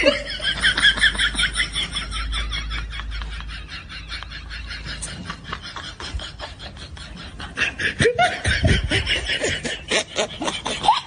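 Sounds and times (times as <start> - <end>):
man laughing into electric fan: 0.0 - 11.0.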